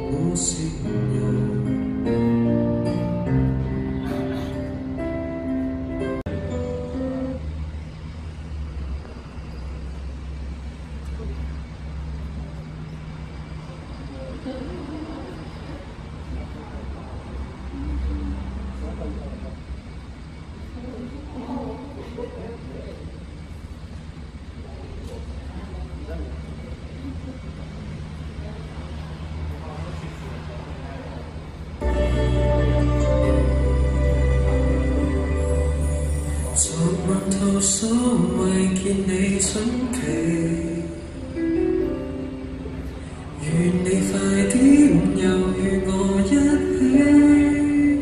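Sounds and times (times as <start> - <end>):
faint voices talking: 0.0 - 5.1, 10.6 - 48.0
road traffic rumble: 0.0 - 48.0.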